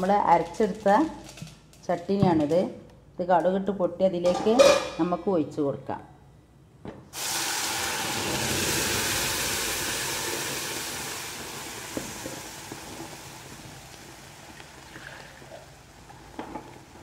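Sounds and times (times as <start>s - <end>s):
batter sizzling in a pan: 7.2s - 17.0s.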